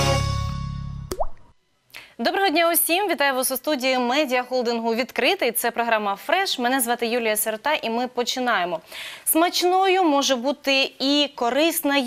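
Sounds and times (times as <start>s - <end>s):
intro jingle music: 0.0s - 1.1s
water-drop plop sound effect: 1.1s - 1.5s.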